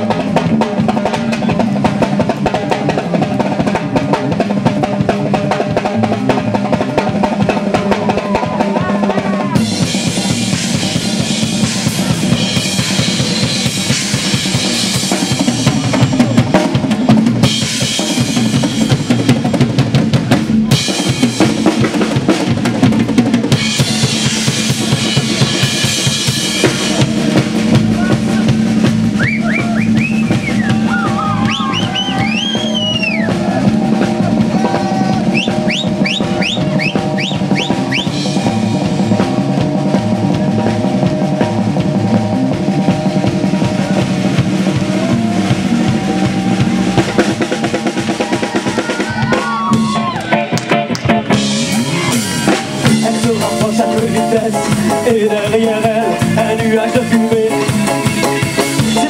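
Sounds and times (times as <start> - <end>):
drum kit beat: 0.0 - 59.0
live band playing: 0.0 - 59.0.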